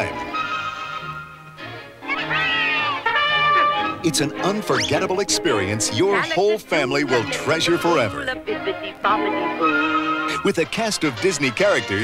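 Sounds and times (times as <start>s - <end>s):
film-score music: 0.0s - 12.0s
cartoon horse whinnying: 0.2s - 1.4s, 2.1s - 4.1s, 9.2s - 10.5s.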